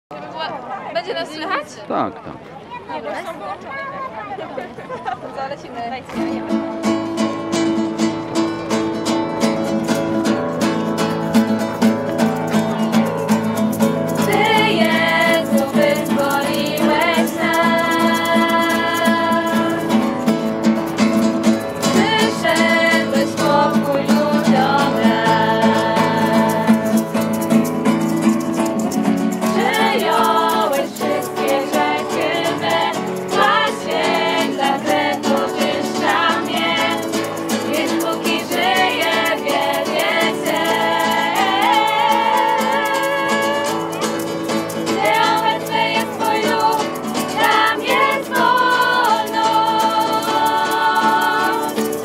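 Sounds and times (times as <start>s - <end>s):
acoustic guitar strumming: 6.1s - 52.0s
group singing a worship song: 14.2s - 20.4s, 21.9s - 27.3s, 29.4s - 43.9s, 44.8s - 52.0s.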